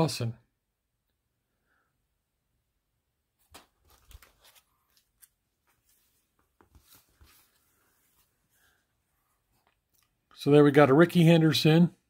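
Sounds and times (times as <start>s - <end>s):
plastic sleeve page crinkling: 3.5s - 7.8s.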